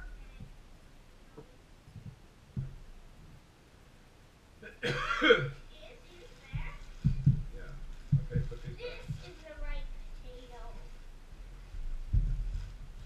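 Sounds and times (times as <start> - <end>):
dull knocks: 2.0 - 2.9, 6.5 - 9.2
cough-like vocal burst: 4.6 - 5.6.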